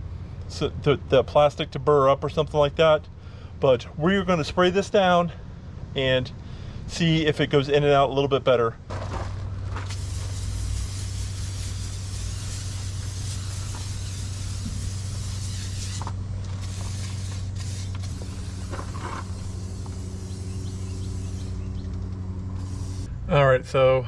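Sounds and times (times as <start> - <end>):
low hum: 8.8 - 24.0
aerosol can spraying: 9.8 - 23.1.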